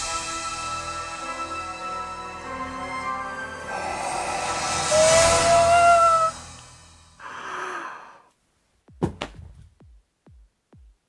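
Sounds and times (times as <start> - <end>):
breathy exhale: 3.6 - 6.0, 7.2 - 8.3
hiss: 3.6 - 8.2
low thumps: 8.8 - 11.0.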